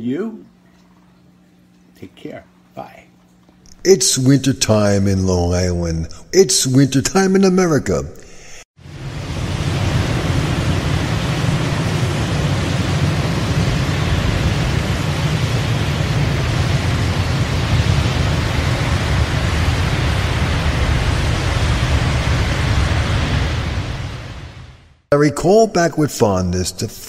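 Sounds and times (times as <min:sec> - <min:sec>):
winter storm rushing noise: 0:08.5 - 0:25.0.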